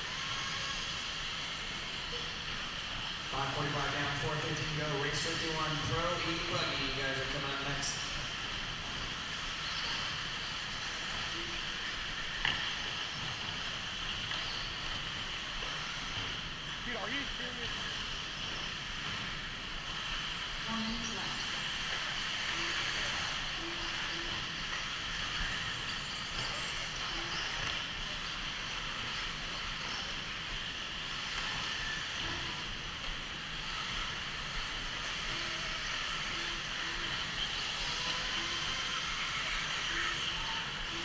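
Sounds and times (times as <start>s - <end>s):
rc cars whirring: 9.3s - 41.0s.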